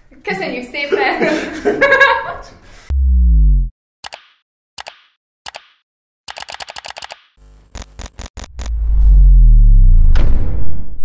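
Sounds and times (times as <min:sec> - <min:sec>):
deep bass tone sliding down: 0:02.9 - 0:03.7, 0:08.6 - 0:11.0
sharp mouse clicks: 0:04.0 - 0:08.7
rattle of clicks: 0:06.3 - 0:08.6.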